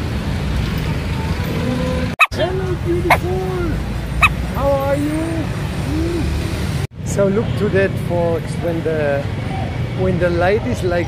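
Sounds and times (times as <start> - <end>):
rumble of passing cars: 0.0 - 11.0.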